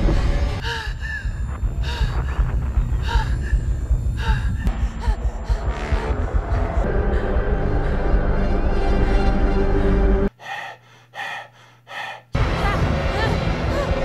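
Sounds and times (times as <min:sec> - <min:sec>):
deep rumble: 0:00.0 - 0:10.3
dramatic music: 0:01.3 - 0:10.3, 0:12.4 - 0:14.0.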